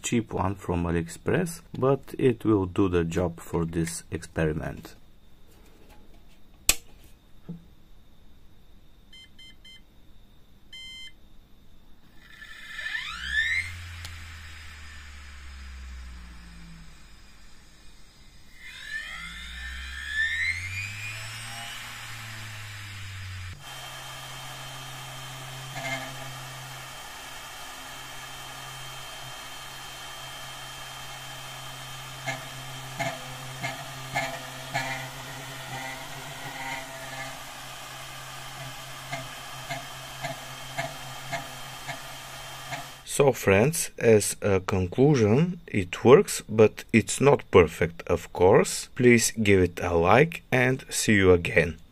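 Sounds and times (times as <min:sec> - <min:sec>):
motor spinning with whine: 0:12.1 - 0:43.1.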